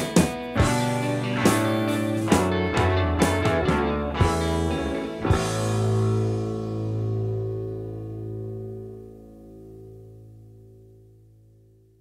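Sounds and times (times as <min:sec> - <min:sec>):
guitar chord ringing out: 0:00.0 - 0:12.0.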